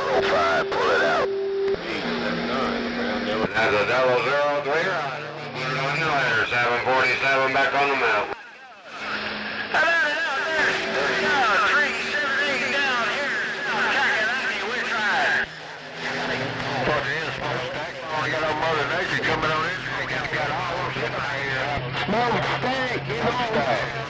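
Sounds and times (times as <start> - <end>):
garbled radio voices: 0.0 - 24.0
low hum: 0.0 - 24.0
steady tone: 0.0 - 24.0.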